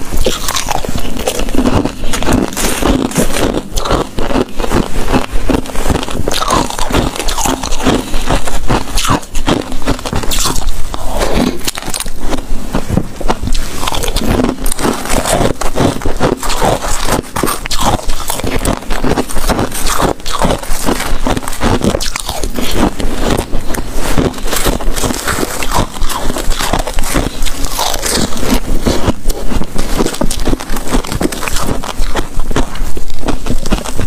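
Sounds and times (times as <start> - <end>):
crunching ice in the mouth: 0.0 - 34.0.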